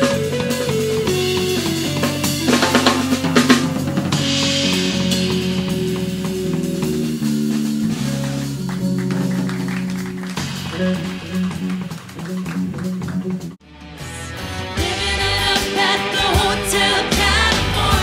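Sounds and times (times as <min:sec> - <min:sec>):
cymbal wash: 0:00.0 - 0:08.4
drum strikes: 0:00.0 - 0:13.6
electric bass line: 0:00.0 - 0:18.0
electric guitar: 0:00.0 - 0:18.0.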